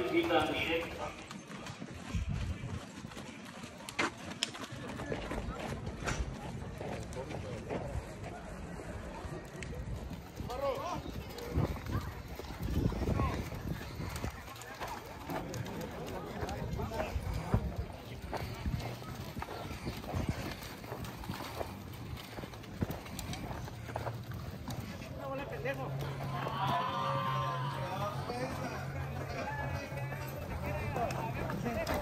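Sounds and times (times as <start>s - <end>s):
hooves on dirt track: 0.0s - 32.0s
people's voices in background: 0.0s - 32.0s.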